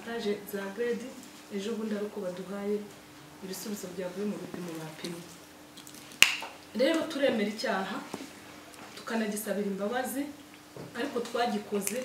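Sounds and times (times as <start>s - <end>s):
woman speaking: 0.0s - 5.4s, 6.7s - 8.2s, 9.0s - 12.0s.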